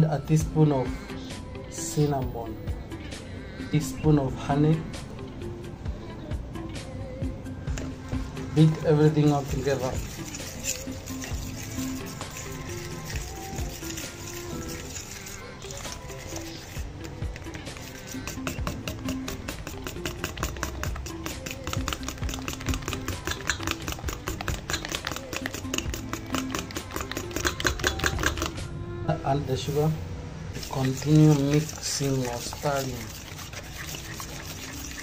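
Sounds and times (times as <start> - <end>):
background music: 0.0 - 35.0
fork clicking against metal bowl: 8.6 - 28.6.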